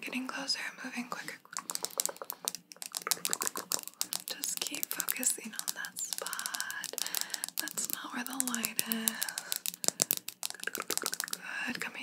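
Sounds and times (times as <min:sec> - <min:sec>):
rapid clicks and taps: 0:01.5 - 0:11.9.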